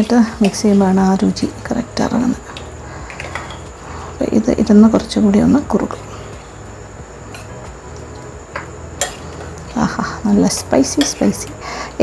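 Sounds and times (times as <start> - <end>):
steady low hum: 0.0 - 12.0
spoon clinking on bowl: 3.1 - 3.7.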